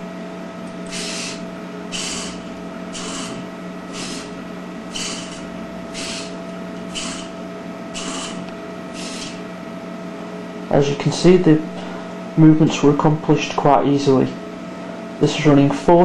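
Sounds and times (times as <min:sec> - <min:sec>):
steady hum: 0:00.0 - 0:16.0
servos whirring: 0:00.7 - 0:09.5.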